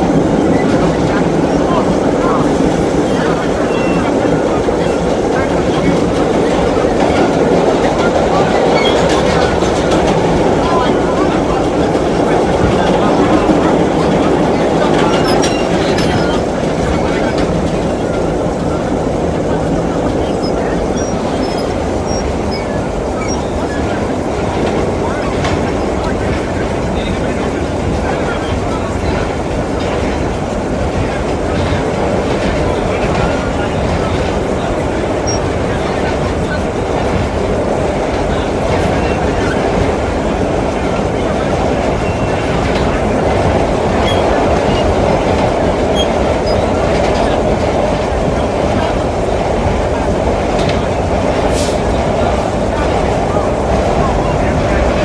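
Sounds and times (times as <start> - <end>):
subway car rumbling on rails: 0.0 - 55.0.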